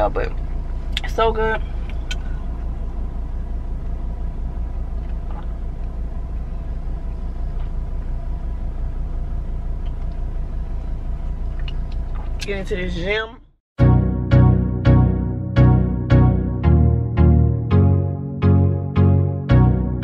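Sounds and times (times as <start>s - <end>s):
car cabin low rumble: 0.0s - 20.0s.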